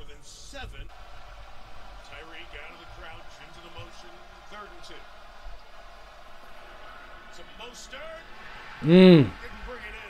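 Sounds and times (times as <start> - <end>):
sports commentator talking: 2.1 - 5.1, 7.3 - 10.0.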